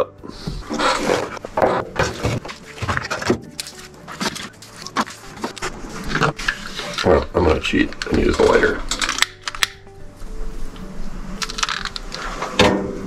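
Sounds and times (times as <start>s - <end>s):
logs knocking against wood and metal: 0.6s - 6.6s.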